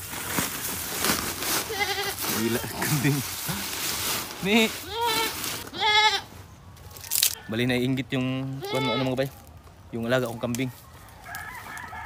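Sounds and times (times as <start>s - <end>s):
crackly rustling background: 0.0s - 12.0s
goat bleating: 1.6s - 3.2s, 4.8s - 6.3s, 8.4s - 9.3s.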